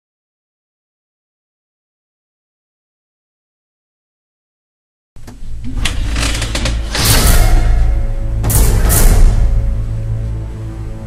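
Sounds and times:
low drone: 0:05.4 - 0:11.0.

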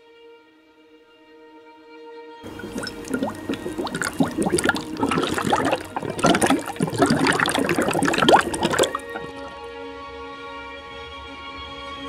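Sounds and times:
liquid bubbling in a glass: 0:02.5 - 0:09.5.

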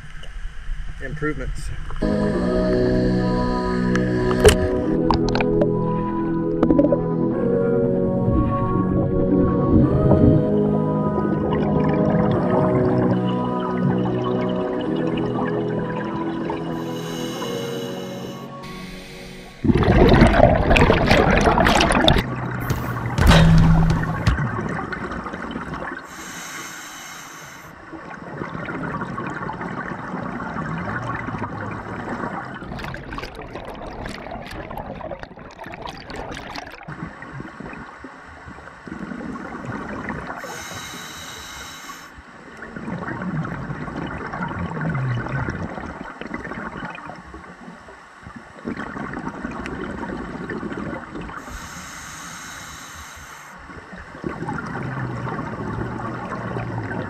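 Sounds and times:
gurgling exhaled bubbles: 0:03.9 - 0:07.2, 0:18.7 - 0:26.1, 0:28.0 - 0:37.9, 0:42.6 - 0:47.2, 0:48.6 - 0:51.7, 0:53.7 - 0:57.0
hissing regulator inhalations: 0:16.7 - 0:20.0, 0:26.1 - 0:27.8, 0:40.4 - 0:42.2, 0:51.4 - 0:53.7.

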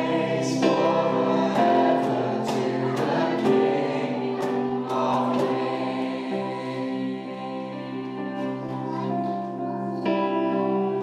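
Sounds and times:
voices singing along: 0:00.0 - 0:08.9
electronic keyboard playing: 0:00.0 - 0:11.0.

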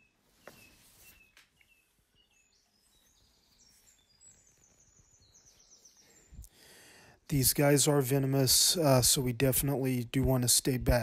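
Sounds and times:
faint bird chirps: 0:00.0 - 0:07.2.

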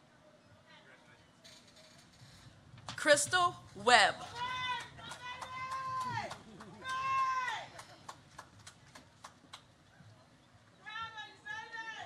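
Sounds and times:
scattered claps: 0:04.2 - 0:09.8
audience whooping: 0:04.3 - 0:07.8.

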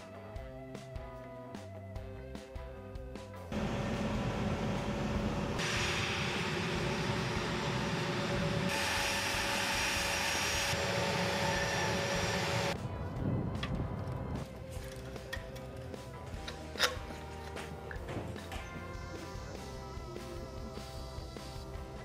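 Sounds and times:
jet engine roaring: 0:03.6 - 0:12.8.

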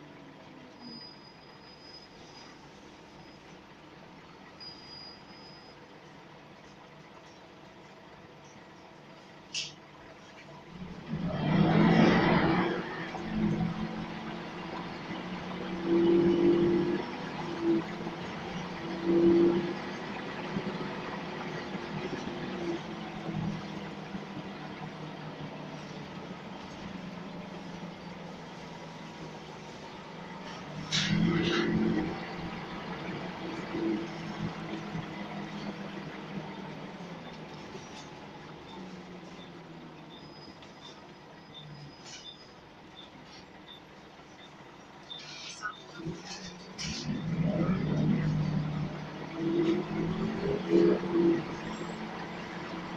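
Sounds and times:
bus diesel engine hum: 0:00.0 - 0:52.9.

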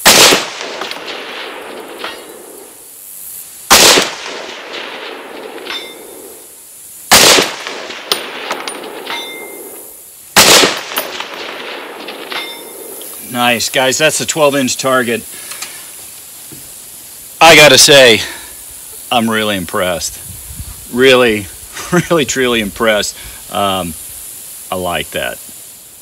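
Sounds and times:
rifle shots echoing: 0:00.0 - 0:02.8, 0:03.7 - 0:06.4, 0:07.1 - 0:13.0
faint metallic ring of steel target: 0:05.3 - 0:06.2, 0:08.1 - 0:09.8, 0:12.0 - 0:12.8.

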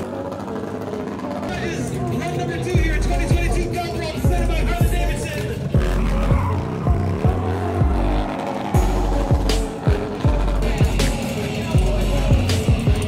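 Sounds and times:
motorcycle engine revving: 0:00.0 - 0:13.0
hip-hop music with booming bass: 0:01.4 - 0:13.0.

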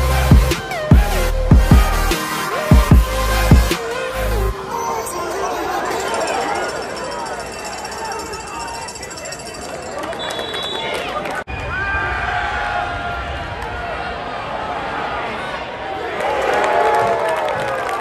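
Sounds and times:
many voices talking and shouting: 0:03.7 - 0:18.0.

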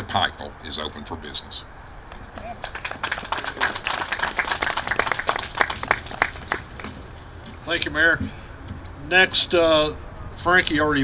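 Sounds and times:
audience applauding: 0:02.4 - 0:07.0.

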